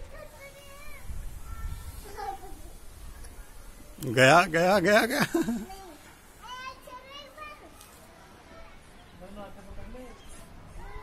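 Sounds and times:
children calling: 0.0 - 9.2.

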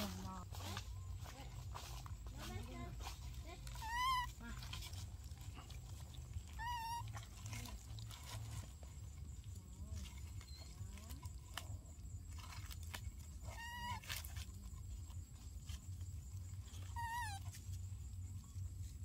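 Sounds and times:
low steady rumble: 0.0 - 19.0
baby monkey coo calls: 3.6 - 5.0, 6.0 - 8.6, 13.4 - 14.3, 16.6 - 17.9.

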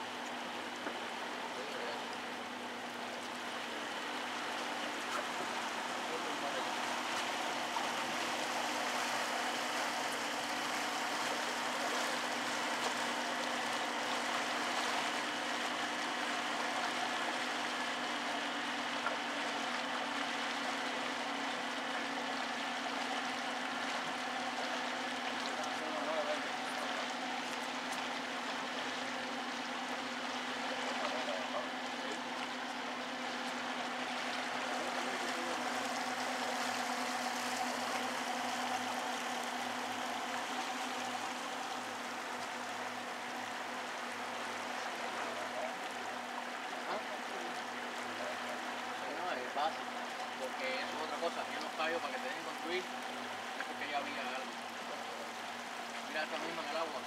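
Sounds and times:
boat motor running: 0.0 - 57.0
water splashing along hull: 0.0 - 57.0.

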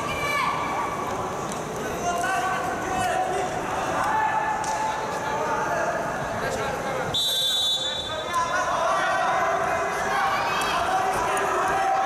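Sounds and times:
crowd voices in a hall: 0.0 - 12.0
referee's whistle blast: 7.1 - 8.3.

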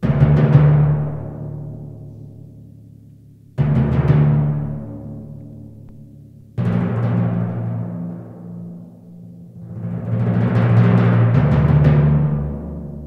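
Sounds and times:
timpani strikes: 0.0 - 13.0.

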